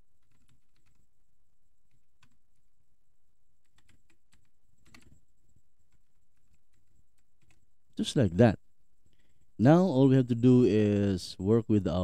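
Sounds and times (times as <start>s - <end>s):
typing on computer keyboard: 0.2s - 1.0s, 1.9s - 2.4s, 3.6s - 5.2s, 5.9s - 7.6s.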